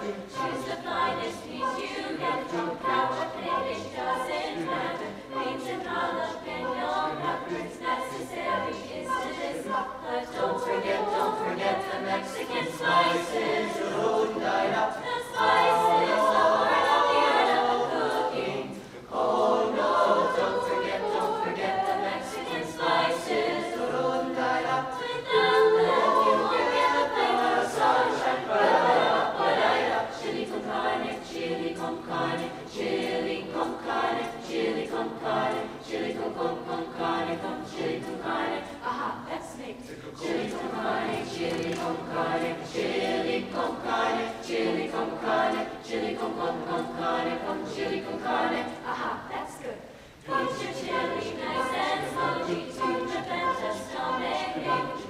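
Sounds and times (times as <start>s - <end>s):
jazz choir singing a cappella: 0.0s - 55.0s.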